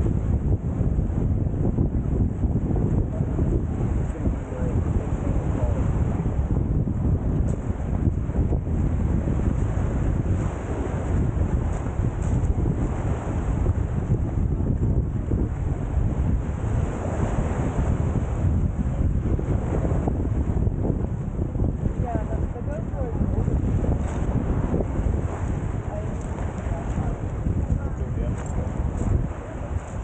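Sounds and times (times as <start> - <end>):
low rumbling noise: 0.0 - 30.0
small waves washing on shore: 0.0 - 30.0
wind buffeting microphone: 0.0 - 30.0.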